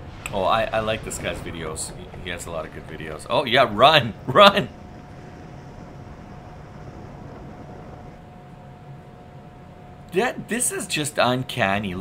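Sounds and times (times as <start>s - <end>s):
sea waves: 0.0s - 9.7s
wind: 0.0s - 12.0s.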